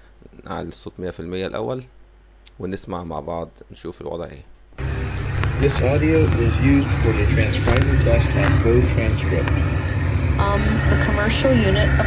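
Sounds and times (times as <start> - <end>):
indistinct talking: 4.8 - 12.0
low rumble: 4.8 - 12.0.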